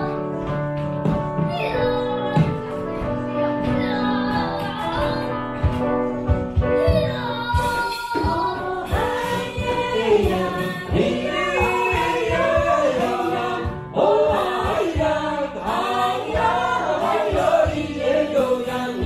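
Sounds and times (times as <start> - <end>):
strummed acoustic guitar: 0.0 - 19.0
woman singing lead: 6.8 - 19.0
choir singing worship song: 7.6 - 19.0.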